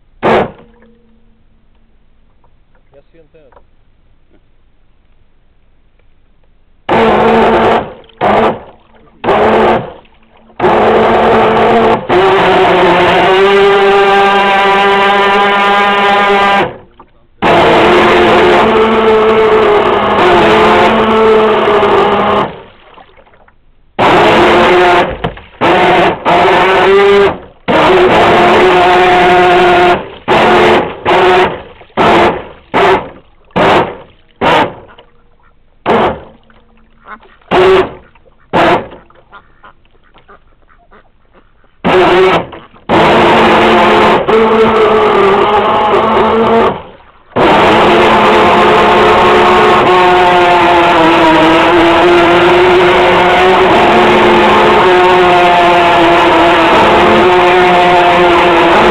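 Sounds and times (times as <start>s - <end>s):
model boat motor whining: 6.9s - 16.8s, 17.4s - 22.7s, 24.0s - 34.9s, 35.8s - 36.4s, 37.5s - 39.0s, 41.8s - 58.9s.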